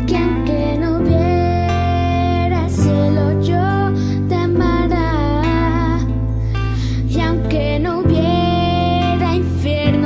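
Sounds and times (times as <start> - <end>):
young woman singing: 0.0 - 10.0.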